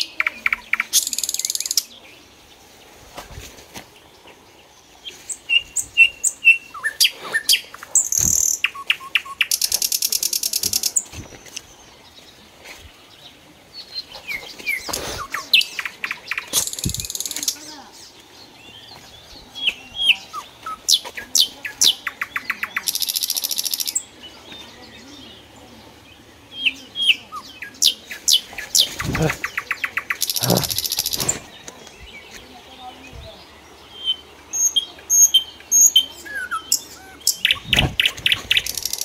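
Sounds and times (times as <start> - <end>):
birdsong with whistles and trills: 0.0 - 2.4, 5.0 - 12.2, 13.2 - 39.0.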